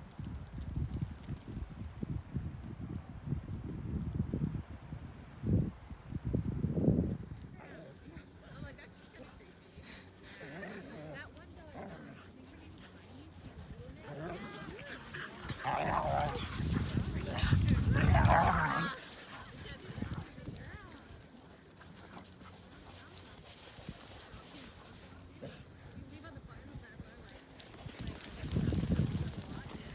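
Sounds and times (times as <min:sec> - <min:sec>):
dogs barking and yipping: 0:11.7 - 0:20.3, 0:27.6 - 0:29.6.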